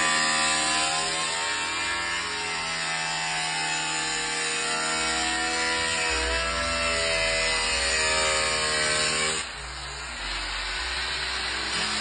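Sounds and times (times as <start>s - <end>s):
angle grinder cutting sheet metal: 0.0s - 12.0s.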